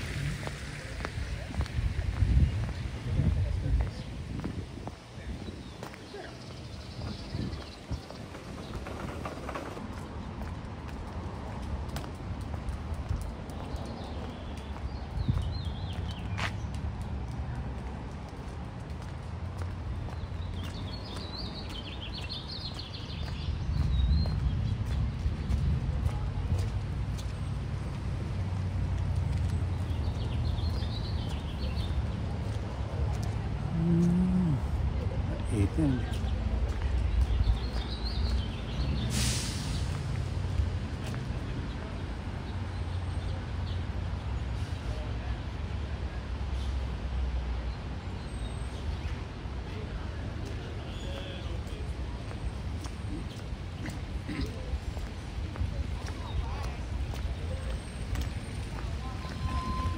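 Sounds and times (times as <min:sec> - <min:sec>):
steady low rumble: 0:00.0 - 0:05.8
birds chirping: 0:02.1 - 0:11.4, 0:19.5 - 0:25.8, 0:29.2 - 0:39.8.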